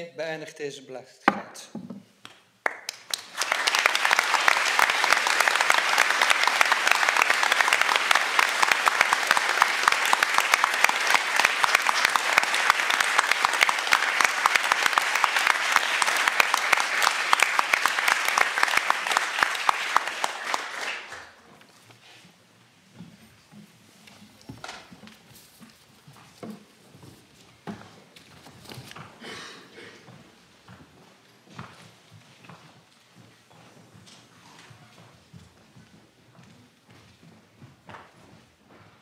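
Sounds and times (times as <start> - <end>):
audience applauding: 2.6 - 21.5.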